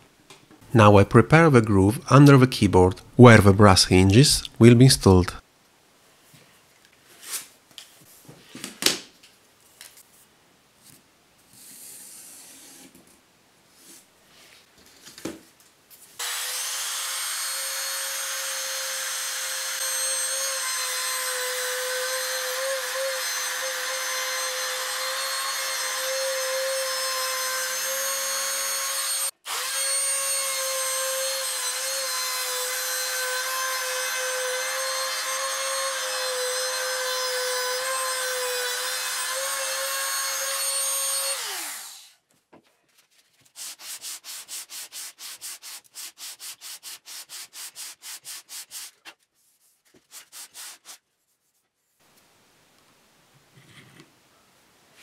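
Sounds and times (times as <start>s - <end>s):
router cutting wood: 16.2s - 42.1s.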